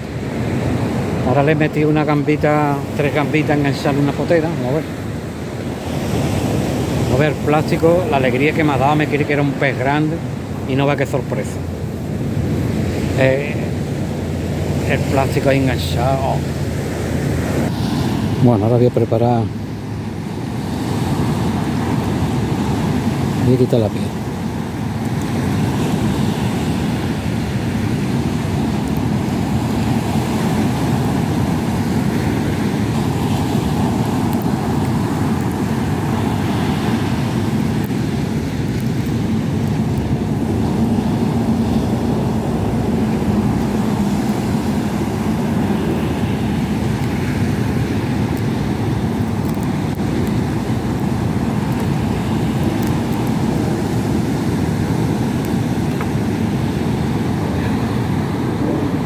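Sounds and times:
rough surf: 0.0s - 59.0s
wind on microphone: 0.0s - 59.0s.

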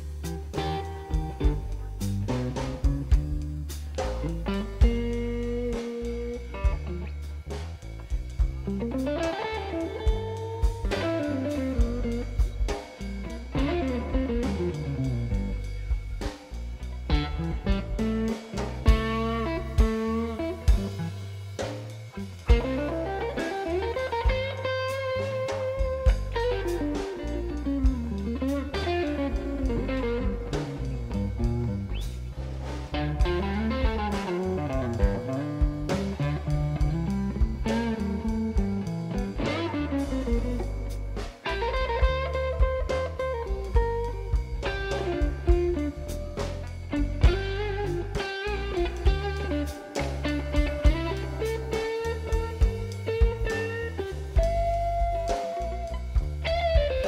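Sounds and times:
electric guitar solo: 0.0s - 3.3s, 8.6s - 15.6s, 17.1s - 21.3s, 22.2s - 32.1s, 32.9s - 57.0s
drums: 0.0s - 57.0s
second guitar: 0.0s - 57.0s.

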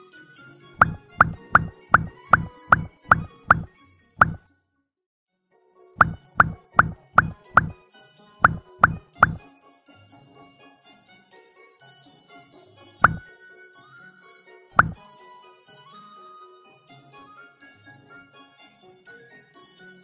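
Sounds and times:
cartoon water-drop bloops: 0.8s - 4.4s, 6.0s - 7.8s, 8.4s - 9.4s, 13.0s - 13.2s, 14.8s - 15.0s.

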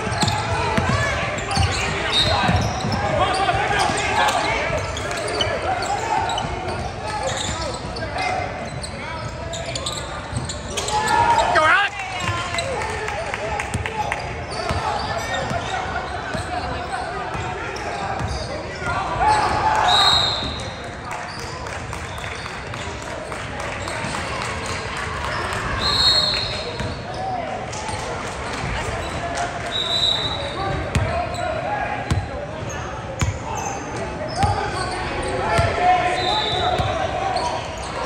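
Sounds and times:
voices of players and spectators: 0.0s - 38.0s.

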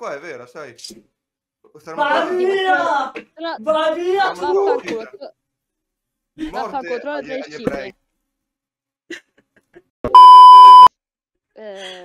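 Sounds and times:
high censor bleep: 10.1s - 10.9s.

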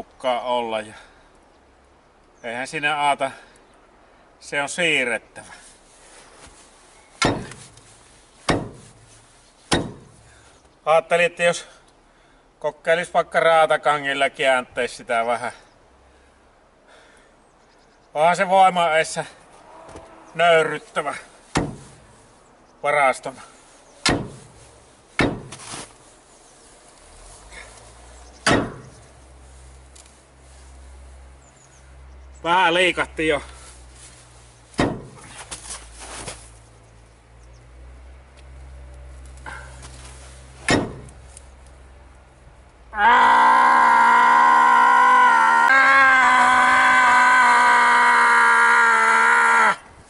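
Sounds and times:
pry bar striking metal shed: 7.1s - 10.4s, 21.5s - 22.2s, 24.0s - 26.0s, 28.4s - 29.2s, 34.7s - 36.4s, 40.6s - 41.5s.

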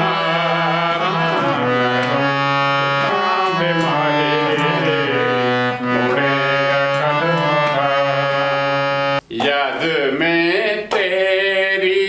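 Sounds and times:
harmonium chord: 0.0s - 9.2s
man singing long sliding notes: 0.0s - 12.0s.

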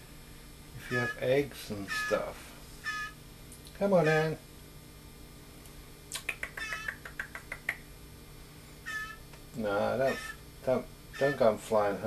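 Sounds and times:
young blue jay begging calls: 0.8s - 3.2s, 3.8s - 4.4s, 6.3s - 7.9s, 8.8s - 9.3s, 9.9s - 11.8s.

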